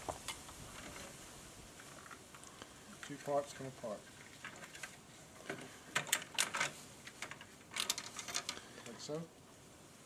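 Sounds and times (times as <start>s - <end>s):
plastic frame clicking and snapping: 5.5s - 8.6s.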